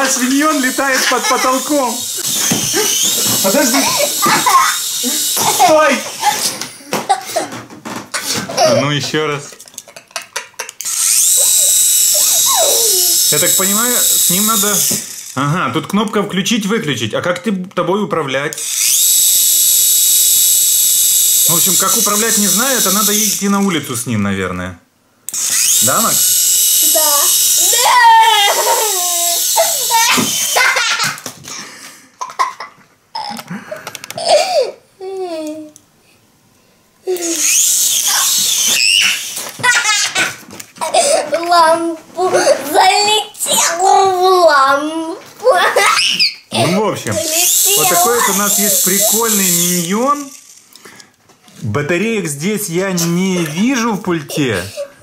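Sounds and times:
toy helicopter motors whining: 0.0s - 6.6s, 10.1s - 15.6s, 18.5s - 23.8s, 25.3s - 31.3s, 37.1s - 44.8s, 45.6s - 51.1s
child laughing loudly: 0.8s - 7.5s, 8.2s - 8.9s, 9.8s - 13.2s, 26.9s - 31.3s, 32.2s - 33.5s, 37.1s - 44.1s, 45.4s - 49.3s.

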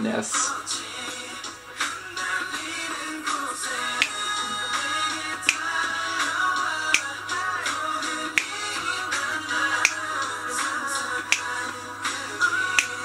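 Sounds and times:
pop christmas song: 0.0s - 13.0s
finger snaps: 4.0s - 13.0s.

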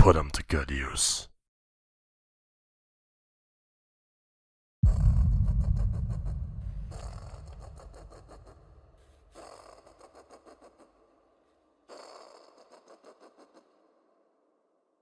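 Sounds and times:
deep boom: 4.8s - 9.3s.

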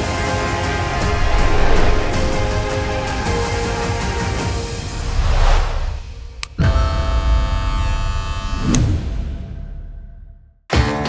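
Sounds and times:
swoosh: 0.6s - 6.5s.

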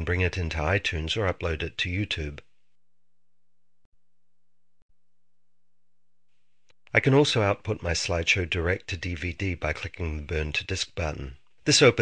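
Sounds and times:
faint steady hum: 0.0s - 12.0s
person speaking: 6.6s - 12.0s.

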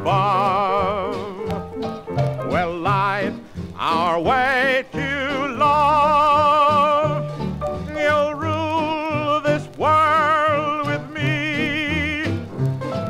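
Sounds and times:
old-style band music: 0.0s - 13.0s.

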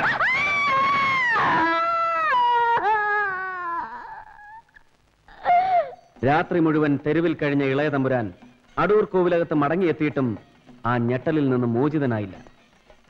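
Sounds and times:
woman screaming: 0.0s - 4.7s.

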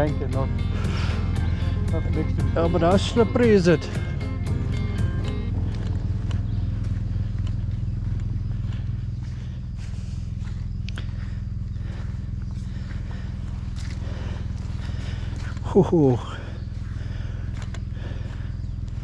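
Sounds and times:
motorcycle engine running: 0.0s - 19.0s.

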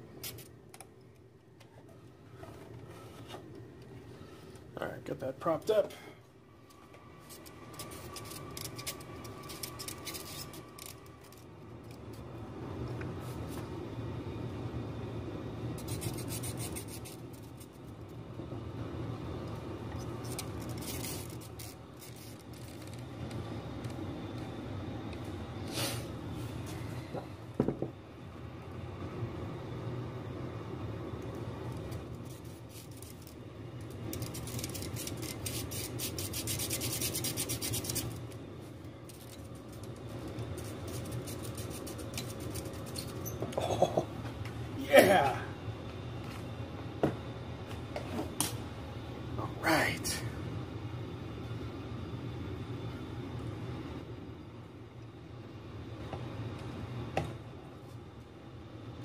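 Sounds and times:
hands rubbing among wiring: 7.2s - 12.0s, 15.8s - 17.9s, 20.1s - 23.1s, 31.8s - 33.4s, 34.0s - 38.3s, 39.0s - 43.2s.

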